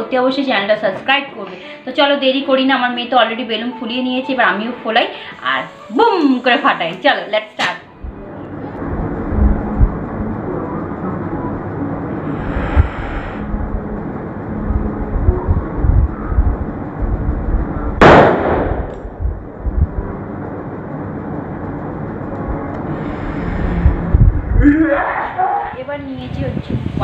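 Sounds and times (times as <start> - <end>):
balloon bursting bang: 18.0 - 19.0.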